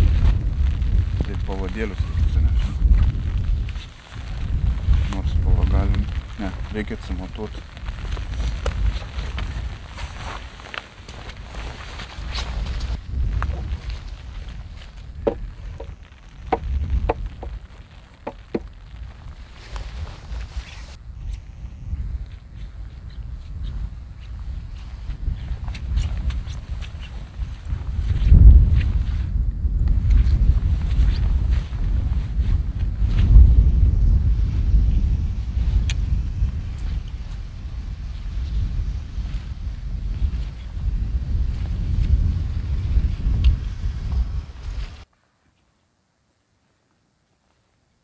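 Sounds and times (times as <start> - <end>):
wind buffeting microphone: 0.0 - 45.1.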